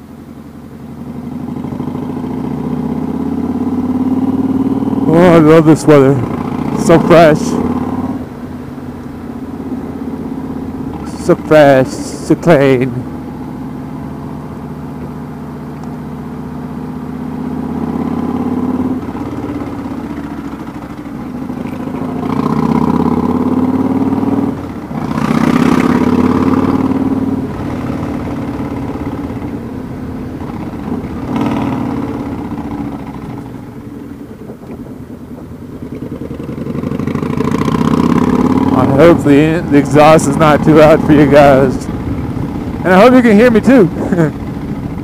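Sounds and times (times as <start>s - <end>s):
loud motorcycle exhaust: 0.9s - 8.2s, 13.4s - 45.0s.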